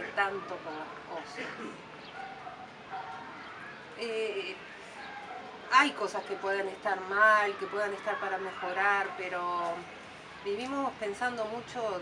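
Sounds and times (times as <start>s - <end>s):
dog barking faintly: 2.1s - 3.8s.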